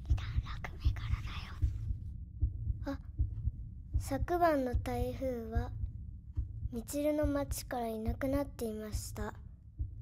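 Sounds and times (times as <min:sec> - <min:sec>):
heartbeat thumps: 0:00.0 - 0:10.0.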